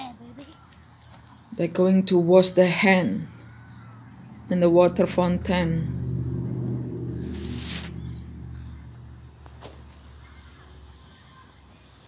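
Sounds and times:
vehicle engine passing: 0:01.8 - 0:11.0.

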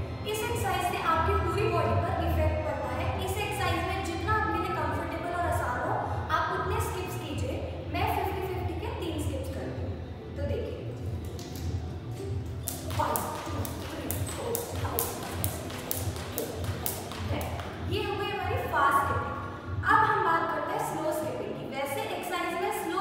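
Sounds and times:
skipping rope slapping stone floor: 0:12.6 - 0:17.8.

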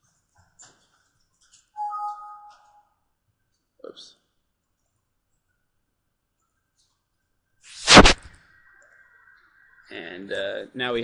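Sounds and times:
computer alert chime: 0:01.8 - 0:02.8.

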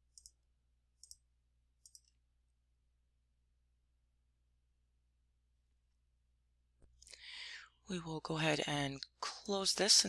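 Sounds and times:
woman breathing in: 0:07.1 - 0:07.8
woman speaking: 0:07.9 - 0:10.0.

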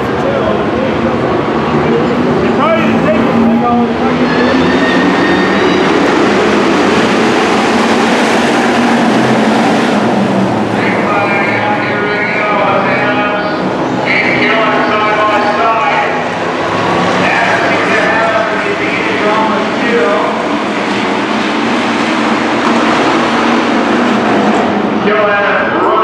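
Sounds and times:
race car engines at speed: 0:00.0 - 0:26.0.

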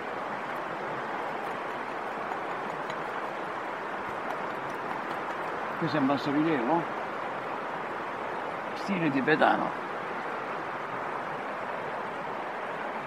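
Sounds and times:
river water flowing: 0:00.0 - 0:13.0
hand tool scratching stone: 0:00.4 - 0:05.8.

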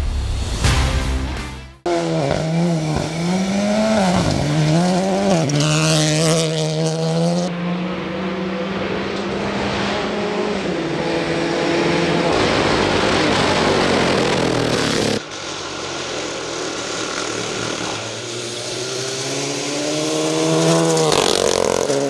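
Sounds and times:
rally car engine at high revs: 0:01.9 - 0:22.0.

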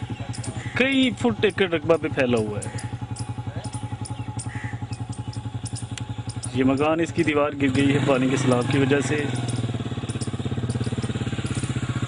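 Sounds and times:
boat engine thudding: 0:00.0 - 0:12.0.

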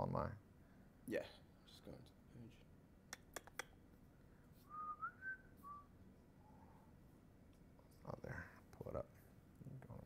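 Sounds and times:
person whistling: 0:04.6 - 0:05.9.

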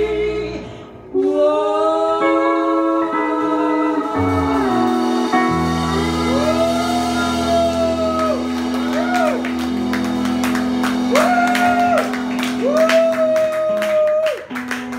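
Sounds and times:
country band playing: 0:03.1 - 0:14.9
people whooping: 0:04.2 - 0:14.7
people clapping: 0:07.6 - 0:14.9.

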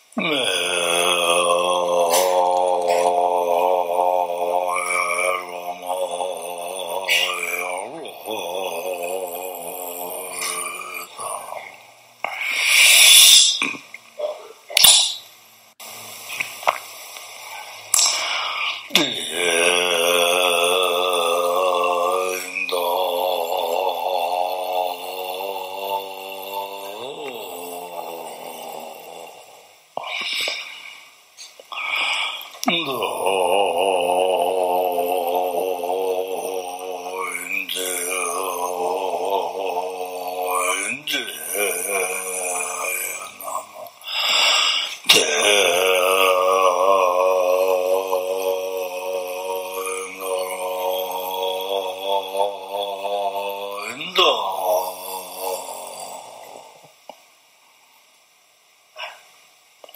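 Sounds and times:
deep-voiced chanting: 0:00.0 - 0:11.8, 0:17.4 - 0:30.2, 0:31.8 - 0:56.9.

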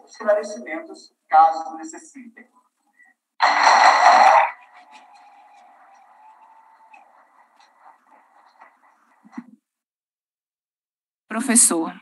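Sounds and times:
audience applause: 0:03.4 - 0:09.4.

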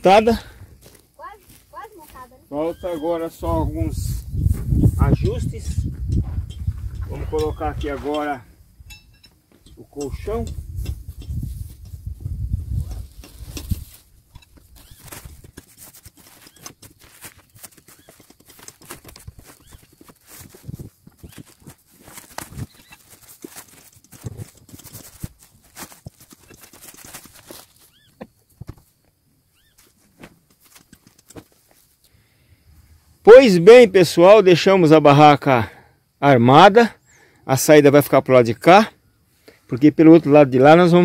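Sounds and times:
camping gear rustling and clicking: 0:04.2 - 0:32.2.

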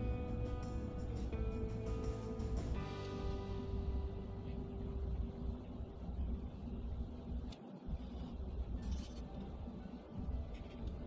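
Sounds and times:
background music with held notes: 0:00.0 - 0:06.7, 0:09.3 - 0:11.0
steady low bass: 0:00.0 - 0:08.7.

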